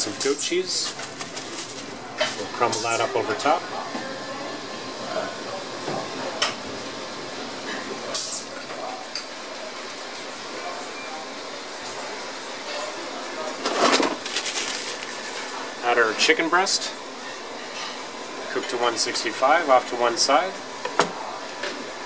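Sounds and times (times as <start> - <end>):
kitchen background noise: 0.0 - 22.0.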